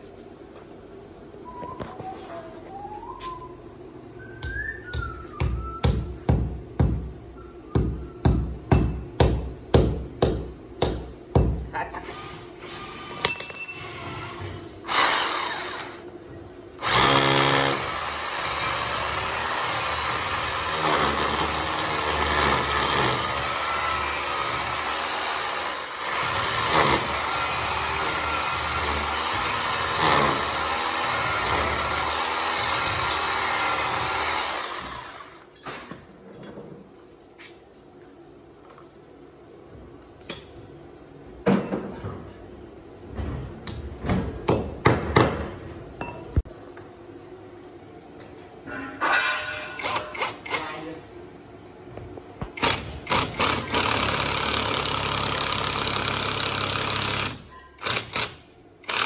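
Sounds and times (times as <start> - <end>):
electric drill boring into wall: 13.9 - 16.0, 16.8 - 35.4, 52.6 - 59.0.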